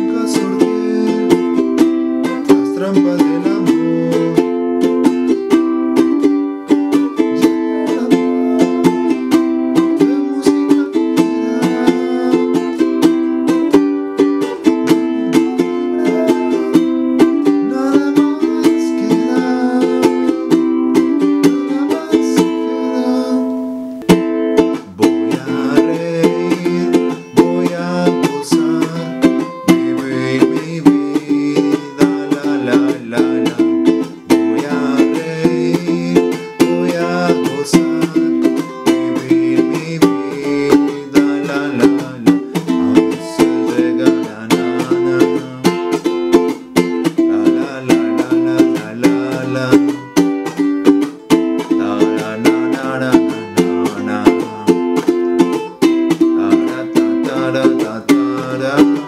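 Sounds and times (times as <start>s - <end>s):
ukulele strumming: 0.0s - 59.0s.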